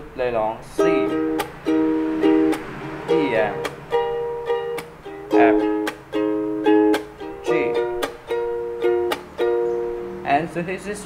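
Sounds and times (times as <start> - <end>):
ukulele chord strums: 0.0 - 11.0
percussive tap on strings: 1.3 - 1.6.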